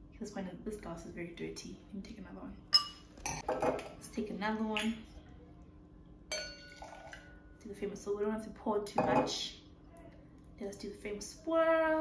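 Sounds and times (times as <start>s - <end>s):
wine glass clinking: 2.8s - 3.7s, 6.3s - 7.1s.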